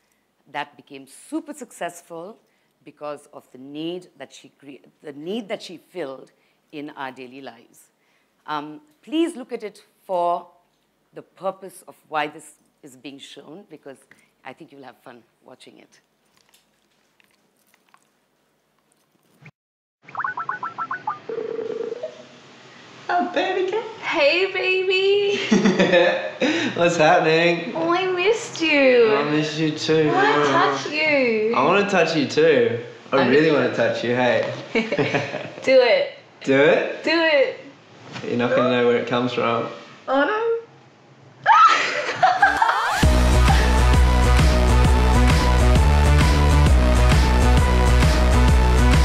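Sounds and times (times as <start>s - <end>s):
faint room noise: 0.0s - 19.5s, 21.2s - 43.0s
short rising electronic chirps: 20.0s - 22.3s
woman laughing: 34.8s - 35.7s, 41.5s - 43.8s.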